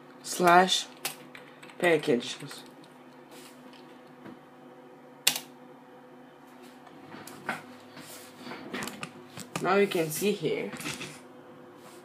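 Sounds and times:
faint steady hum: 0:00.0 - 0:12.0
computer mouse click: 0:05.3 - 0:05.5.

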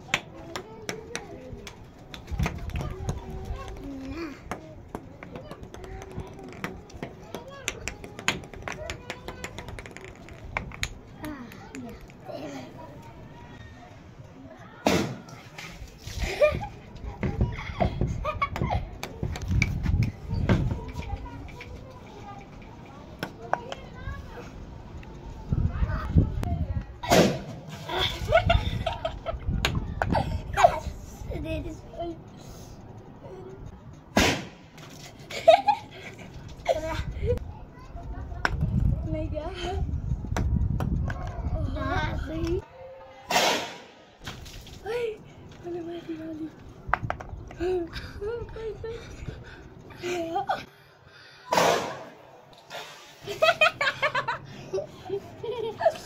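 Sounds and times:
faint children's voices: 0:00.0 - 0:34.1, 0:35.1 - 0:43.4
balls rattling against plastic baskets: 0:05.0 - 0:12.2
small objects clicking and knocking: 0:07.6 - 0:12.2.

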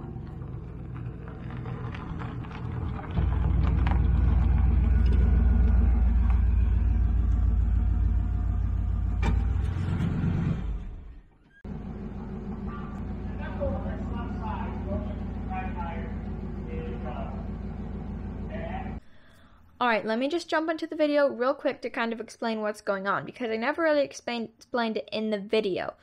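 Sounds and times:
vehicle engine rumbling: 0:00.0 - 0:19.4.

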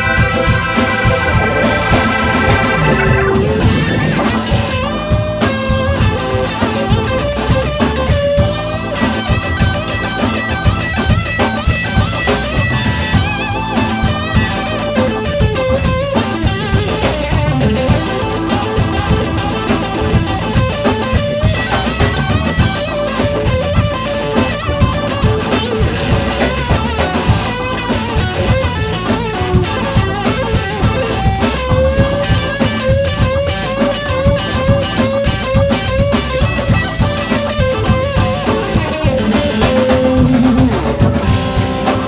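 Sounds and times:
electric guitar lead with bent notes: 0:00.0 - 0:06.6, 0:30.0 - 0:42.0
drum kit steady beat: 0:00.0 - 0:12.3, 0:21.2 - 0:42.0.

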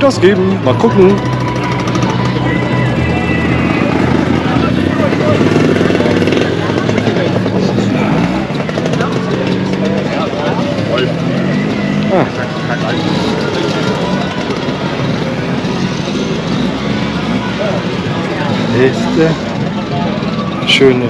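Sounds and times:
crowd chatter: 0:00.0 - 0:21.0
scooter engine running: 0:00.0 - 0:21.0.

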